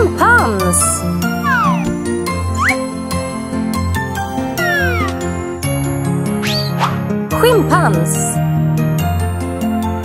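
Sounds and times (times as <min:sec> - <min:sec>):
cartoon music with tinkling notes: 0:00.2 - 0:03.0.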